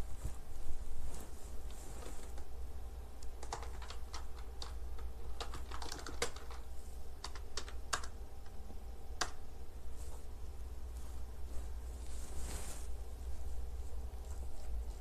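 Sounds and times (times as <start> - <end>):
steady low hum: 0.0 - 15.0
computer keyboard typing: 3.3 - 8.6.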